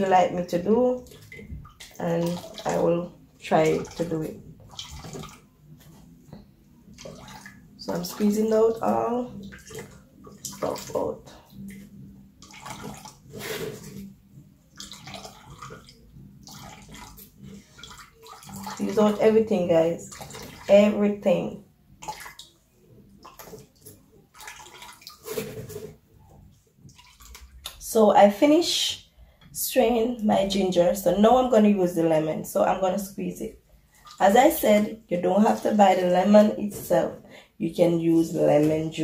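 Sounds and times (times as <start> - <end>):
juice trickling and dripping: 0.0 - 21.1, 21.9 - 27.9
faint spoon scrapes: 13.3 - 14.1, 25.2 - 26.0.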